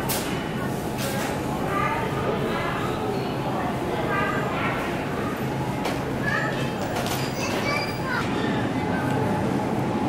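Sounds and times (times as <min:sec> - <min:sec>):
indistinct voices of shoppers: 0:00.0 - 0:10.0
steady background hum: 0:00.0 - 0:10.0.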